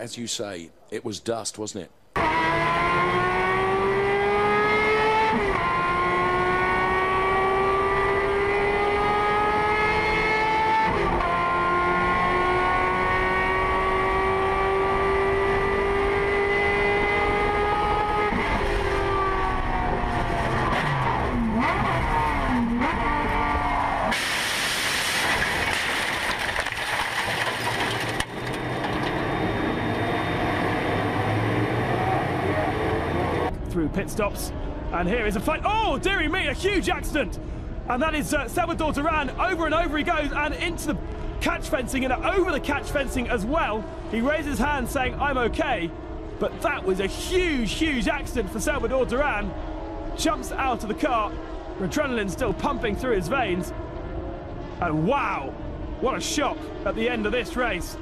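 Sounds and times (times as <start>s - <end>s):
race car engine accelerating: 2.2s - 33.7s, 37.3s - 58.0s.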